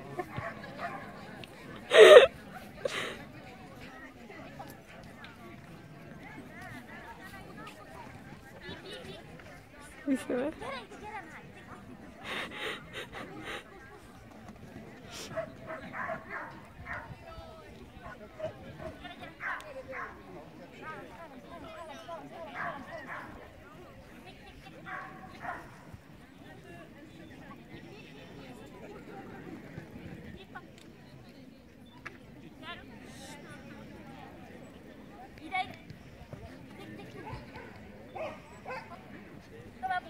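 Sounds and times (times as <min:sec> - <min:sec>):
dog barking: 0:15.4 - 0:17.1, 0:24.9 - 0:25.7, 0:38.2 - 0:38.9.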